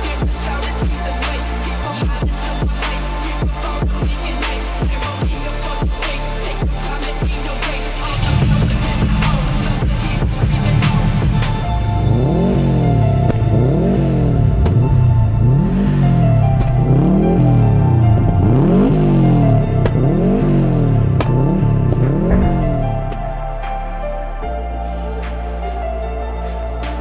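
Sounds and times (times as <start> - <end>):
car engine revving: 0.0 - 23.5
music: 0.0 - 27.0.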